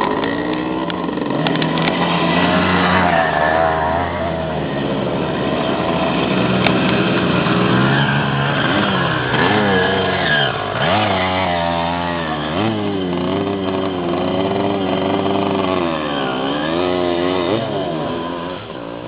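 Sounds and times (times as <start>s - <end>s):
dirt bike engines revving: 0.0s - 19.0s.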